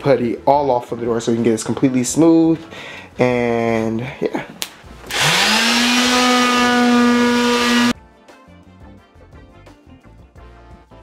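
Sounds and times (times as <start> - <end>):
electric sander whining: 5.1 - 8.0.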